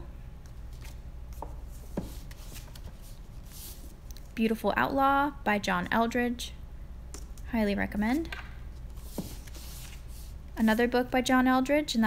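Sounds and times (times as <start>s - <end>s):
books rubbing and rustling on shelf: 0.7s - 4.0s, 8.7s - 11.0s.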